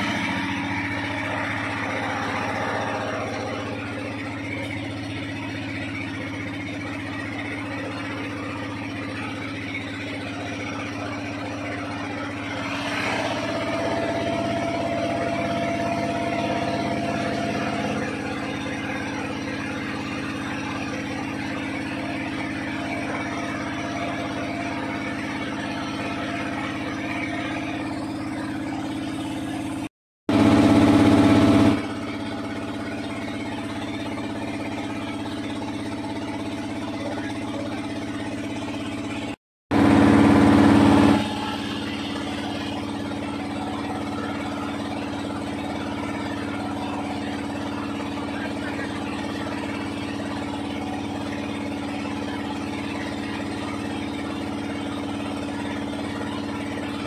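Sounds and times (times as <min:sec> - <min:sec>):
small boat motor running: 0:00.0 - 0:57.0.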